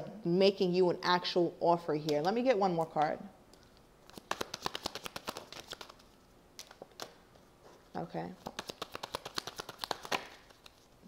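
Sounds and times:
cards shuffled by hand: 4.0 - 7.2, 8.4 - 11.0.

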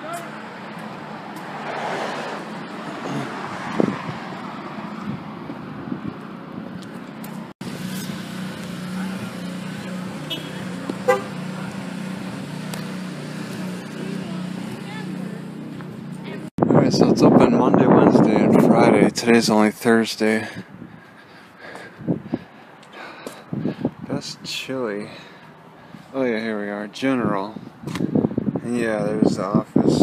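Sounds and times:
car passing: 0.3 - 16.5.

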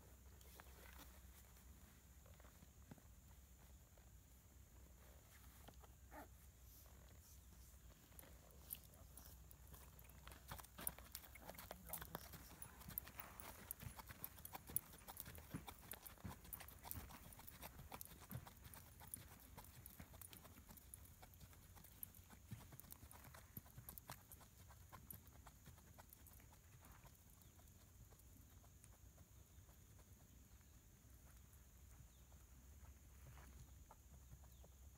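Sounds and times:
hooves clip-clopping on sand: 0.0 - 34.9.

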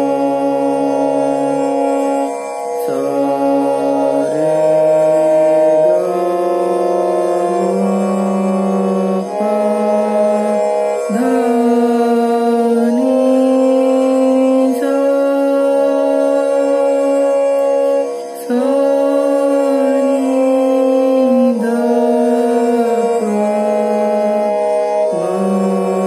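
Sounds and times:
sustained reed organ notes: 0.0 - 26.0.

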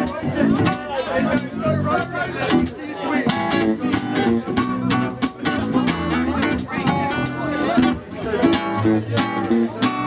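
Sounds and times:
live band with guitar: 0.0 - 10.0.

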